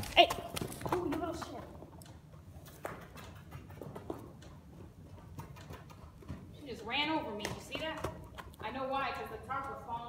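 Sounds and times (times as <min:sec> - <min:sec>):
hooves thudding on dirt: 0:00.0 - 0:10.0.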